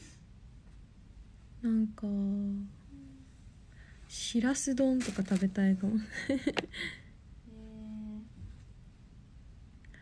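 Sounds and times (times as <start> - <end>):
woman humming hmm: 2.5 - 3.4, 7.4 - 8.4.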